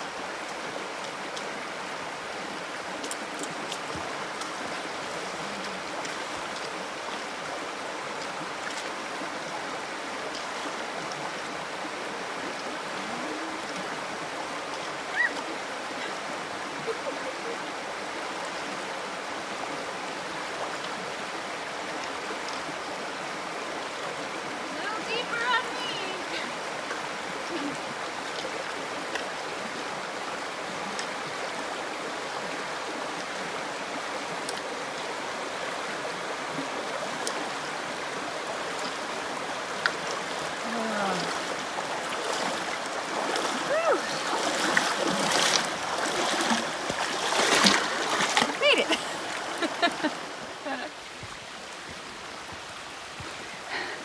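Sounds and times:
river rushing over rocks: 0.0 - 54.0.

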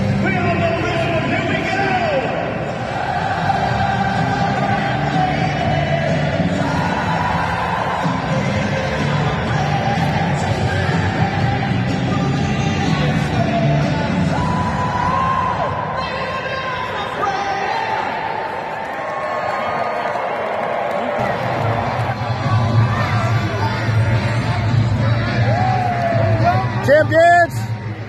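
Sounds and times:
music over public address: 0.0 - 18.5, 21.0 - 28.0
crowd singing along: 2.4 - 14.4.

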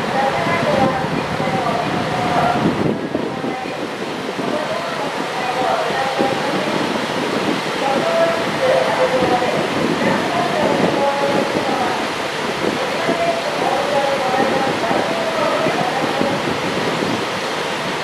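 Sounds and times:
chatter of many voices: 0.0 - 7.0, 7.8 - 16.6.

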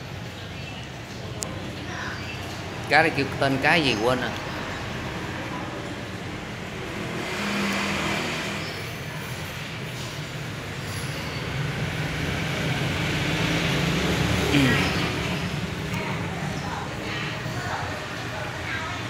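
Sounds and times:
road traffic engines: 0.0 - 19.0.

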